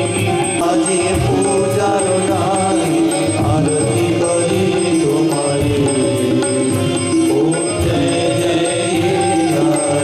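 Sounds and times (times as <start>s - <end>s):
devotional hymn singing: 0.0s - 10.0s
instrumental accompaniment: 0.0s - 10.0s
steady beat: 0.0s - 10.0s.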